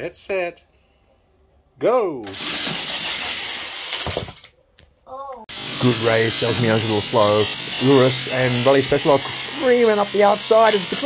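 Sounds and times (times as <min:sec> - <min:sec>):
toy cars rolling down plastic track: 0:02.2 - 0:04.5, 0:05.6 - 0:11.0
toy cars clattering into gate: 0:02.3 - 0:04.6, 0:10.6 - 0:11.0.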